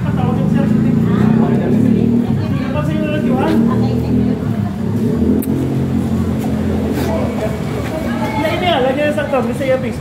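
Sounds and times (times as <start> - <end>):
low engine hum: 0.0 - 8.7
faint voices: 0.0 - 10.0.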